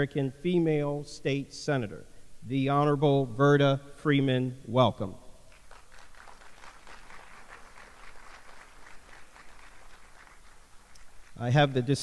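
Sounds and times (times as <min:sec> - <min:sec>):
audience applauding faintly: 0:05.5 - 0:11.5.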